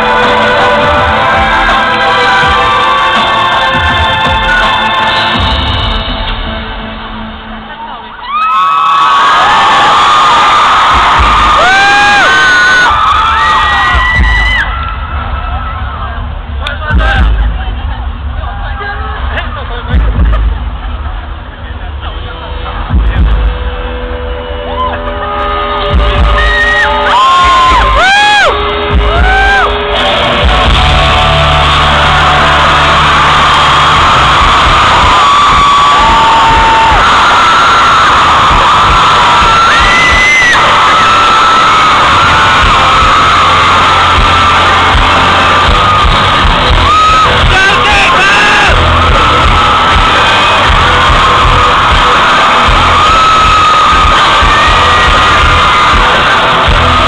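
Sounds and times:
amplified concert music: 0.0 - 57.0
crowd screaming and cheering: 0.0 - 57.0
high screams: 31.0 - 57.0.

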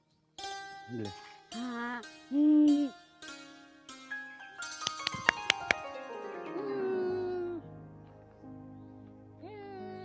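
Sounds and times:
plucked string notes: 0.4 - 10.0.

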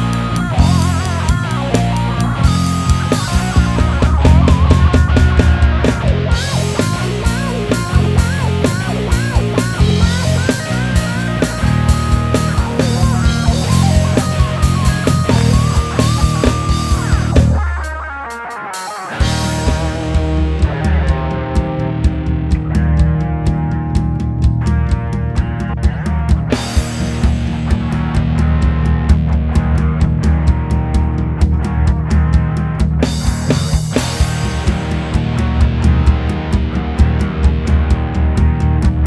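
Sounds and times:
bass guitar: 0.0 - 39.0
drums: 0.0 - 39.0
electric guitar lead: 0.0 - 39.0.

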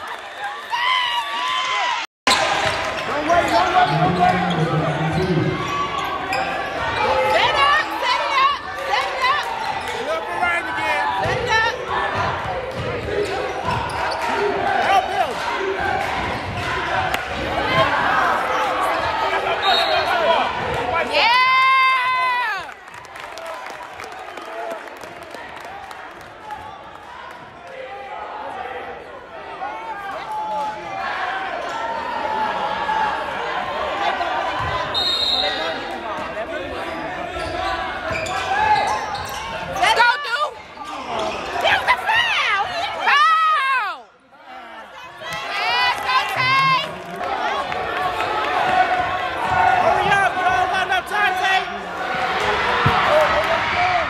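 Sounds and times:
players and spectators voices: 0.0 - 54.0.

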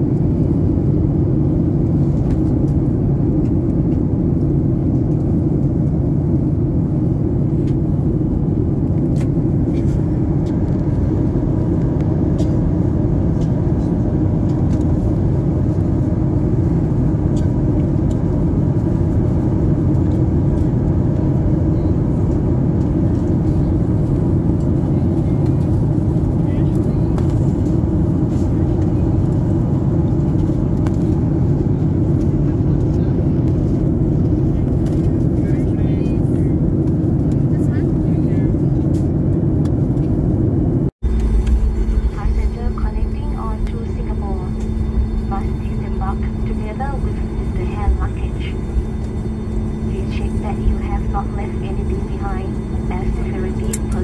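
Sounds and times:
airflow past aircraft fuselage: 0.0 - 54.0
jet engine drone: 0.0 - 54.0.

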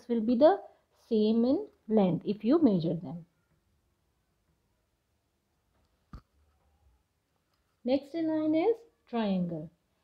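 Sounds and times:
woman speaking: 0.0 - 3.3, 7.9 - 9.8
faint low noise: 0.0 - 10.0.

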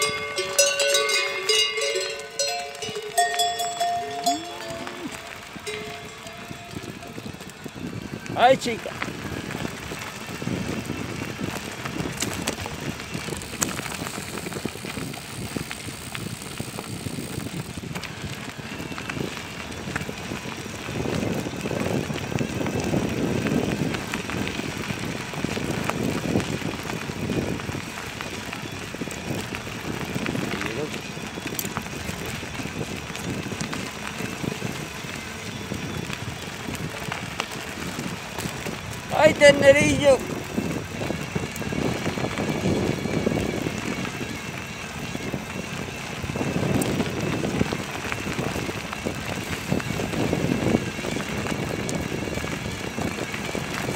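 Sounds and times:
tyres rattling over gravel: 0.0 - 53.9
wind on microphone: 0.0 - 53.9.

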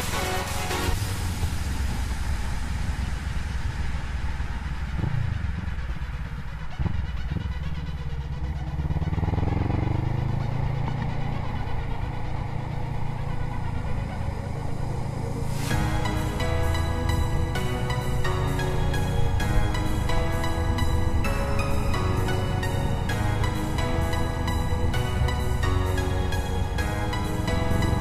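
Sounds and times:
motorcycle engine accelerating: 0.0 - 28.0.

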